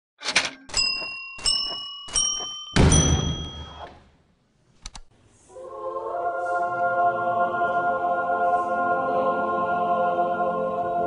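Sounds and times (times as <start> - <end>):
sharp ringing hits: 0.7 - 4.0.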